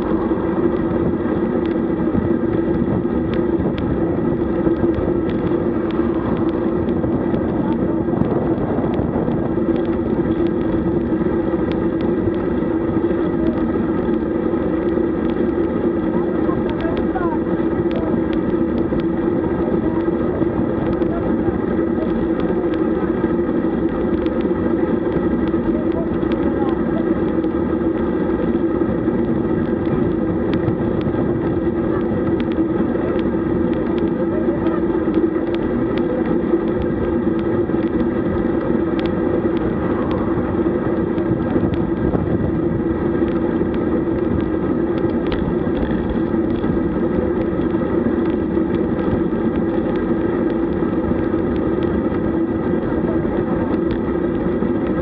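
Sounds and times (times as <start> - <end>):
constant low hum: 0.0 - 55.0
road noise: 0.0 - 55.0
wind rush: 0.0 - 55.0.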